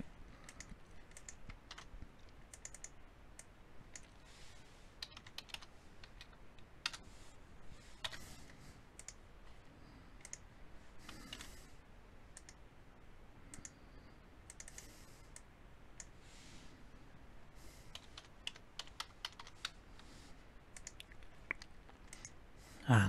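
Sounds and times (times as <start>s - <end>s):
computer keyboard typing: 0.4s - 3.0s, 3.9s - 4.2s, 5.0s - 7.0s, 8.0s - 8.3s, 11.0s - 11.6s, 14.5s - 14.9s, 17.9s - 20.1s, 20.8s - 22.4s
mouse clicks: 0.4s - 4.2s, 5.0s - 7.0s, 9.0s - 9.2s, 10.2s - 10.4s, 12.3s - 12.6s, 13.5s - 13.8s, 14.4s - 16.2s, 20.8s - 22.4s.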